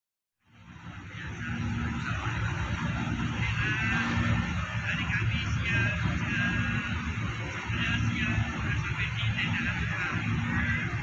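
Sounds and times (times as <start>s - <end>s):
low rumbling background noise: 0.5s - 11.0s.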